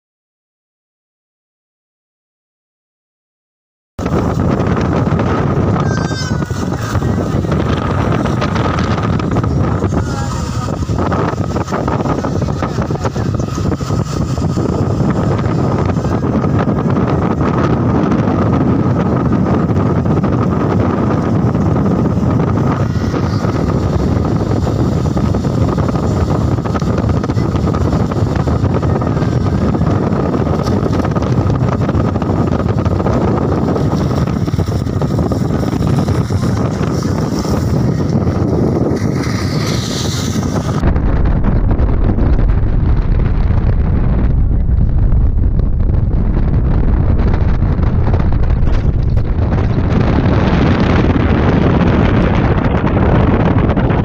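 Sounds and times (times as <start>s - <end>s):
vehicle driving rumble: 4.0s - 54.0s
wind rushing over microphone: 4.0s - 54.0s.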